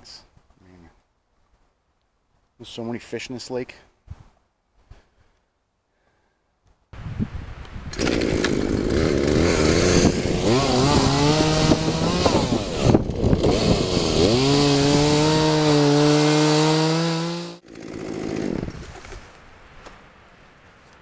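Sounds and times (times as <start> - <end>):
chainsaw cutting log: 7.9 - 19.2.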